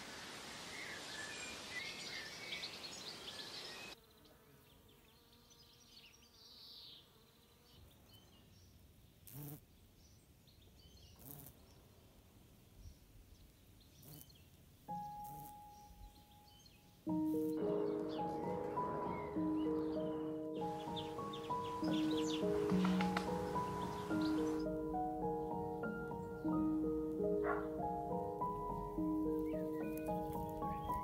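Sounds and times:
bumblebee buzzing: 0:09.2 - 0:09.6, 0:11.2 - 0:11.6, 0:14.0 - 0:14.4, 0:15.0 - 0:15.7, 0:17.1 - 0:25.8, 0:28.5 - 0:31.0
bird chirps: 0:13.8 - 0:26.8, 0:29.2 - 0:31.0.

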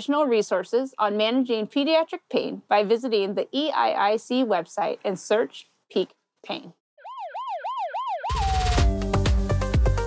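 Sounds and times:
siren yelping: 0:07.0 - 0:09.1
electronic music with heavy beat: 0:08.3 - 0:10.0.

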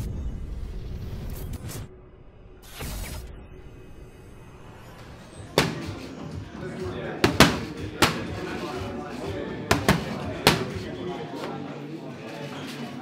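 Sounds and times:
boxing gloves slapping focus mitts: 0:05.6 - 0:06.1, 0:07.2 - 0:08.4, 0:09.7 - 0:10.8.

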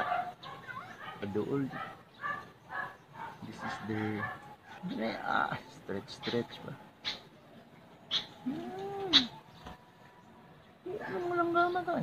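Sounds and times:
sparrow chirps: 0:00.0 - 0:12.0
low rising and falling bird call: 0:07.0 - 0:11.3.

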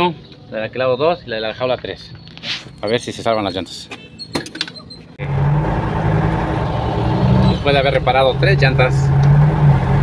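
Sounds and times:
road noise: 0:00.0 - 0:10.0
truck engine droning: 0:05.2 - 0:10.0.

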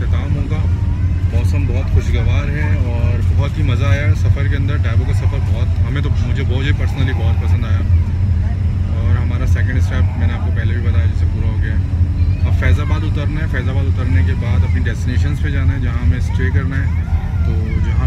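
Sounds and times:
bus engine rumble: 0:00.0 - 0:18.0
man talking: 0:00.0 - 0:18.0.

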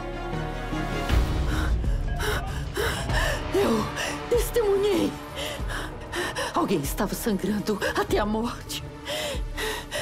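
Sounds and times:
tense drama score music: 0:00.0 - 0:10.0.

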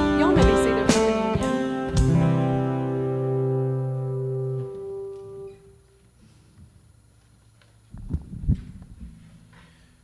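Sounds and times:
guitar chord ringing: 0:00.0 - 0:06.0
microphone handling thumps: 0:07.9 - 0:09.6.

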